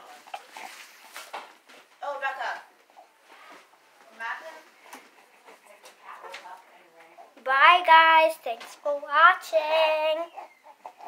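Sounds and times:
rustling and handling noise: 0.0 - 7.5
baby whimpering: 10.2 - 11.0.

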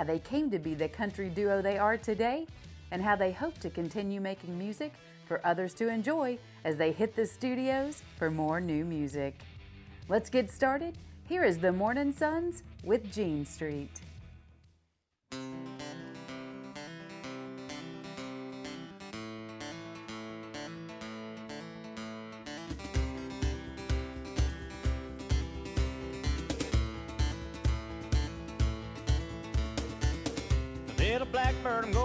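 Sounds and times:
acoustic guitar picked notes: 15.3 - 32.0
steady thumping beat: 22.7 - 32.0.

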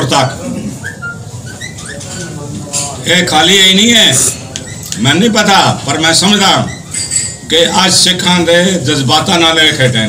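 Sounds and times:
murmur of people: 0.0 - 10.0.

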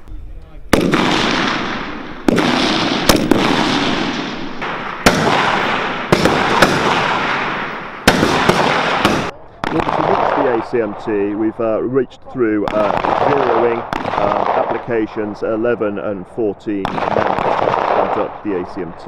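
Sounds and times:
rifle shots with echo: 0.7 - 11.5, 12.6 - 19.0.

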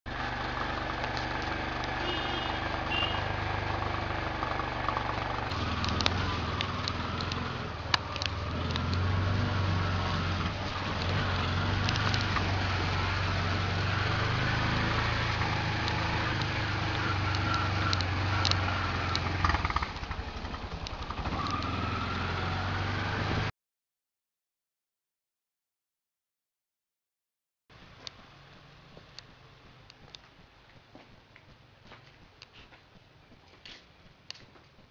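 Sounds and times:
engine running: 0.1 - 23.5, 27.7 - 34.8
sharp clicks: 5.6 - 9.1, 15.8 - 19.9.

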